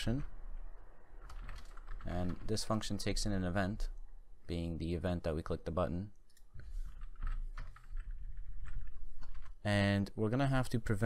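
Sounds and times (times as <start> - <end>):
computer keyboard typing: 1.2 - 3.1, 6.3 - 9.6.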